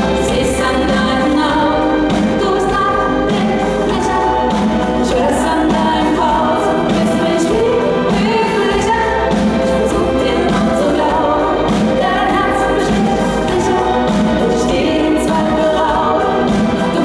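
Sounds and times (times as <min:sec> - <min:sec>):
pop beat and bass line: 0:00.0 - 0:17.0
women singing in harmony: 0:00.0 - 0:17.0.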